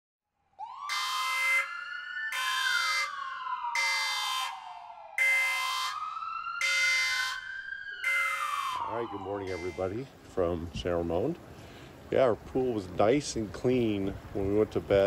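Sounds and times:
wailing siren: 0.5 - 10.1.

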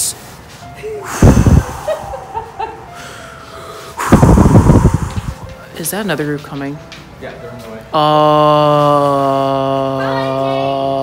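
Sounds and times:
man blowing breaths into microphone: 0.1 - 2.3, 2.9 - 5.6.

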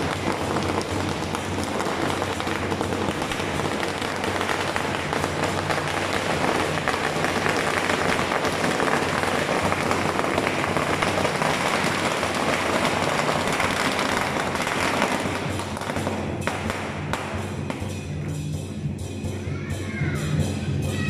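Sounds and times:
firecrackers crackling: 0.0 - 19.4.

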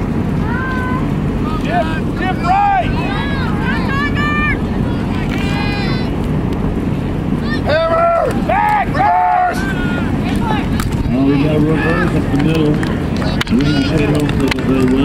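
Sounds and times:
wind rumble on microphone: 0.0 - 15.0
people shouting: 0.4 - 6.3, 7.3 - 14.8.

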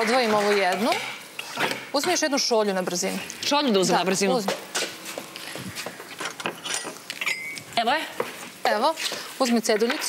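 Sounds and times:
kitchen utensils and crockery clinking: 0.0 - 3.0, 6.2 - 7.7.

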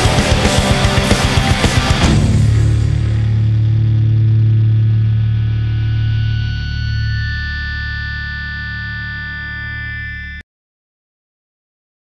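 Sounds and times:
distorted electric guitar and bass drone: 0.0 - 10.4.

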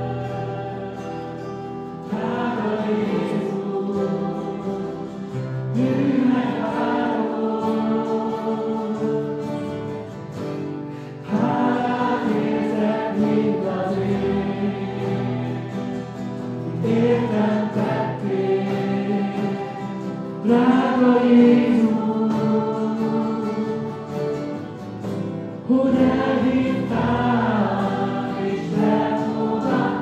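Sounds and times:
group of young voices singing: 0.0 - 10.0, 11.0 - 24.7, 25.6 - 30.0
strummed acoustic guitars: 0.0 - 30.0.

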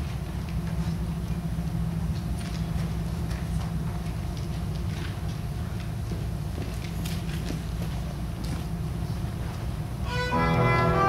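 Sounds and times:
low room hum: 0.0 - 11.0
sheet music rustling: 9.4 - 11.0.

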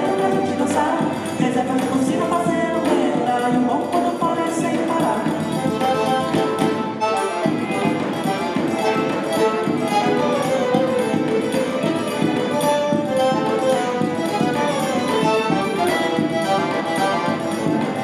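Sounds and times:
hand percussion beat: 0.0 - 18.0
string quartet playing dance music: 0.0 - 18.0.

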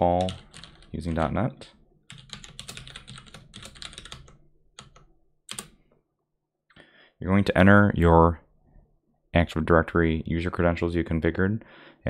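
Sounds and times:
computer keyboard typing: 0.0 - 1.3, 2.1 - 5.8.

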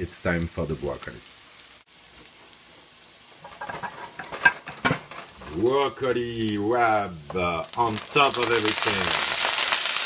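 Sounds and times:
onion sizzling in frying pan: 0.0 - 10.0
oil crackles: 0.2 - 10.0.

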